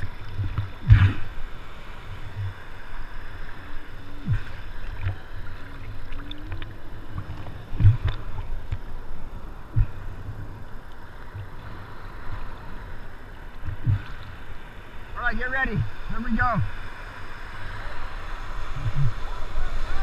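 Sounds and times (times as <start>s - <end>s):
water slapping surfboard: 0.0s - 2.9s, 4.0s - 9.0s, 13.5s - 14.4s
water sloshing and lapping: 0.0s - 17.7s.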